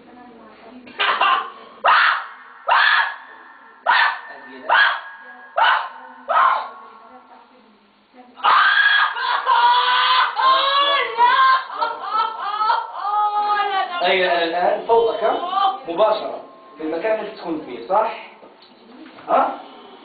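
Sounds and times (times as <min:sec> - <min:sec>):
woman crying out: 0:08.4 - 0:14.2
woman wailing: 0:08.4 - 0:14.4, 0:15.0 - 0:15.9.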